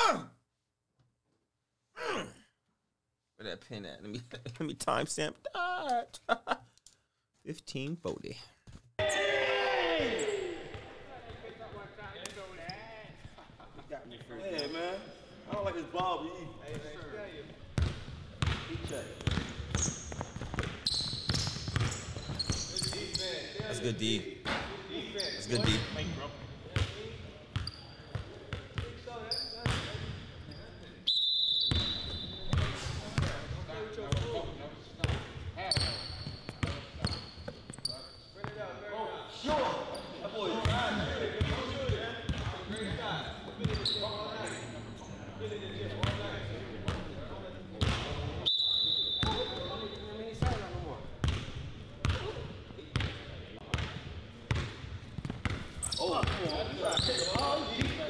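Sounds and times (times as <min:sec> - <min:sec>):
players' voices: 0:07.5 - 0:20.8, 0:21.4 - 0:31.1, 0:31.7 - 0:58.0
sneaker squeaks: 0:14.2 - 0:15.2, 0:17.8 - 0:23.8, 0:24.6 - 0:33.4, 0:35.0 - 0:38.6, 0:39.4 - 0:40.8, 0:42.3 - 0:47.0, 0:47.8 - 0:51.4, 0:55.2 - 0:58.0
basketball bouncing on hardwood: 0:19.2 - 0:22.4.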